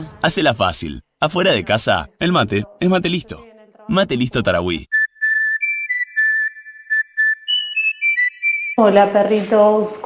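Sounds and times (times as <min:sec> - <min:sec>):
person whistling a tune: 0:04.9 - 0:08.8.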